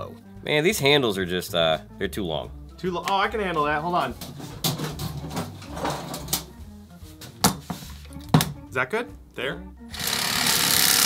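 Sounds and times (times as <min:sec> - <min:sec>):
tools knocking on workbench: 0:04.2 - 0:06.5, 0:07.2 - 0:08.6.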